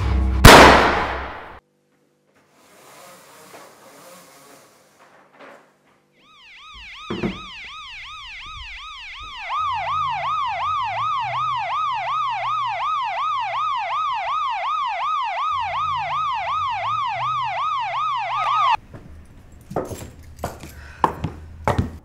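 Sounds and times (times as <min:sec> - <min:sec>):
electronic siren wailing: 0:06.2 - 0:18.8.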